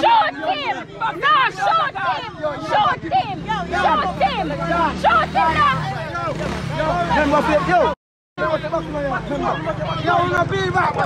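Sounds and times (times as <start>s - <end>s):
people shouting and arguing: 0.0s - 11.0s.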